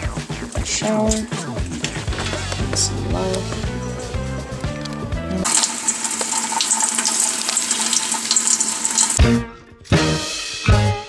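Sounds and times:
water spraying onto plant leaves: 0:05.4 - 0:09.2.

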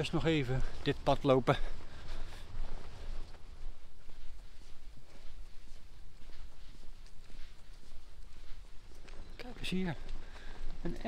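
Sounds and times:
faint footsteps: 0:00.0 - 0:11.0.

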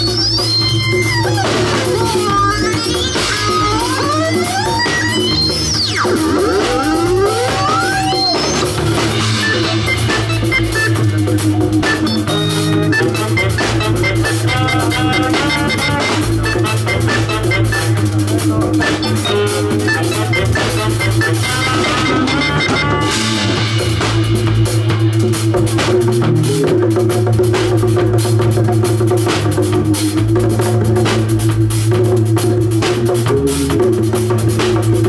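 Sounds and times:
saxophone melody: 0:00.0 - 0:25.0
drum kit and congas: 0:00.0 - 0:35.0
electric bass line: 0:00.0 - 0:35.0
reggae band playing: 0:00.0 - 0:35.0.

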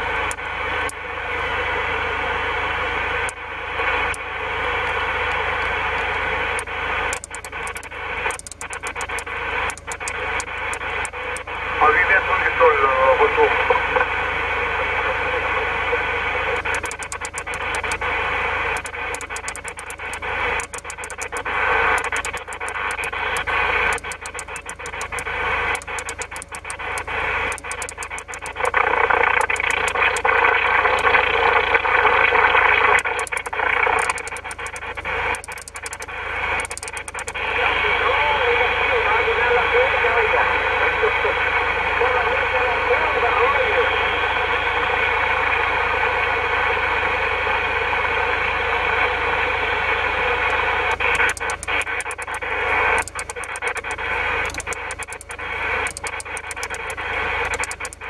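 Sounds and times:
sharp crackling clicks: 0:04.8 - 0:11.5, 0:16.6 - 0:18.1, 0:18.8 - 0:31.3, 0:32.5 - 0:37.4, 0:50.9 - 0:58.0
radio band hiss: 0:07.0 - 0:18.1, 0:18.8 - 0:44.5, 0:50.5 - 0:58.0
garbled radio voices: 0:11.8 - 0:14.1.

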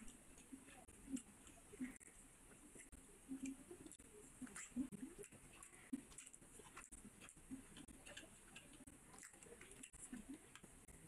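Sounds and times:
chewing and lip smacking: 0:03.4 - 0:10.6.

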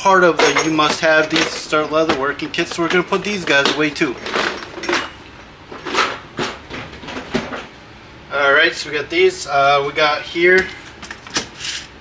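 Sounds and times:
metal stamps rattling and knocking: 0:00.3 - 0:07.7.

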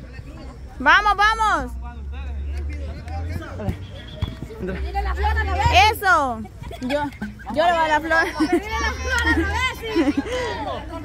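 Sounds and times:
voices shouting and talking: 0:00.0 - 0:11.0.

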